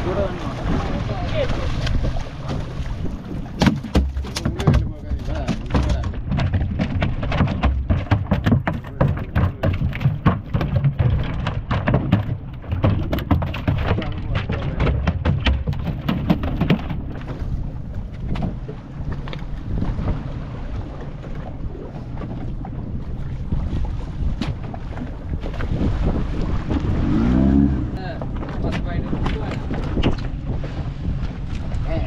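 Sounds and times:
wash of water: 0.0s - 18.0s, 23.0s - 32.0s
wind buffeting microphone: 0.0s - 32.0s
fish slapping against deck: 3.5s - 17.4s
steady low rumble: 8.8s - 32.0s.

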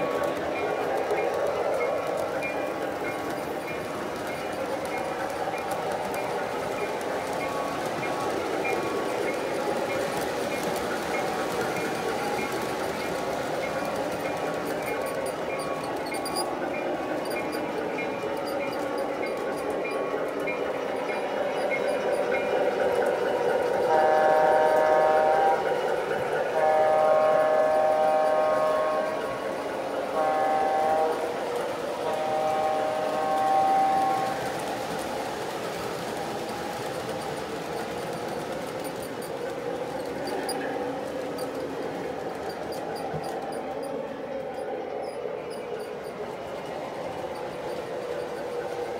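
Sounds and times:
model train running on track: 0.0s - 48.9s
model train horn chord: 23.9s - 25.7s, 26.5s - 29.4s, 30.1s - 31.4s, 32.0s - 34.4s.

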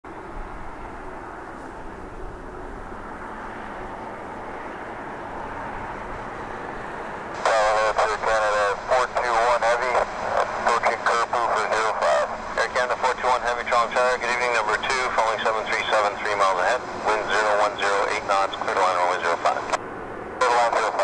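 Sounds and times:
jet engine noise: 0.1s - 21.0s
air traffic control radio: 7.4s - 19.8s, 20.4s - 21.0s.

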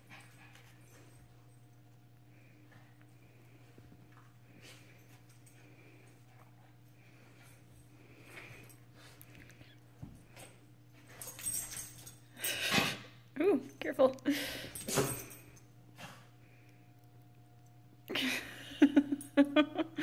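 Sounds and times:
dogs play-fighting: 0.0s - 13.1s, 14.7s - 16.4s.

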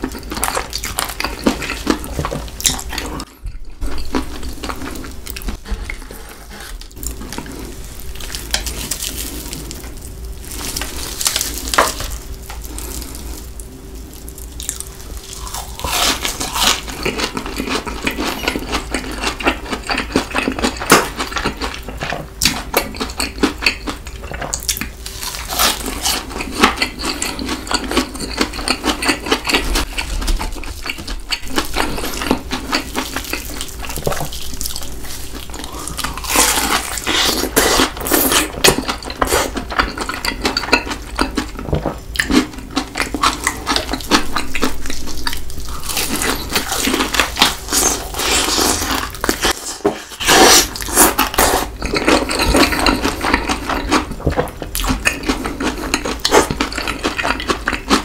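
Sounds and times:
crunchy chewing: 0.0s - 58.0s.

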